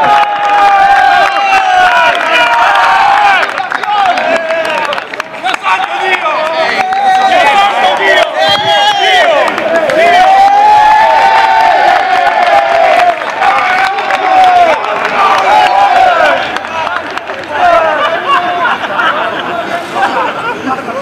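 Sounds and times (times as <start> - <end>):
men calling and shouting: 0.0 - 21.0.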